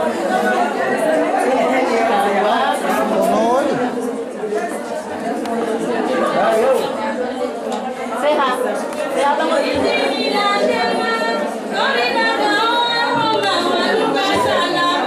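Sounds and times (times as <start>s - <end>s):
murmur of overlapping conversation: 0.0s - 15.0s.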